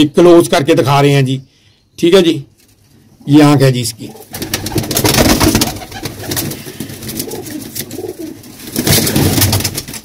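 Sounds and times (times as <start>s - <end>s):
pigeons cooing: 4.0s - 9.4s.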